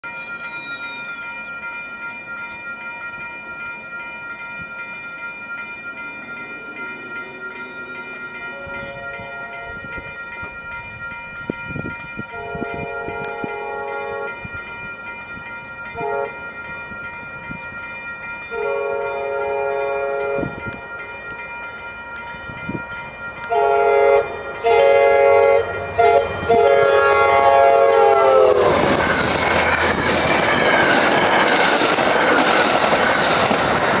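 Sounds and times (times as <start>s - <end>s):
crossing bells ringing: 0.0s - 34.0s
train passing rush and clatter: 0.0s - 34.0s
train horn blasts: 8.5s - 9.9s, 12.3s - 14.4s, 15.9s - 16.4s, 18.5s - 20.8s, 23.4s - 29.2s.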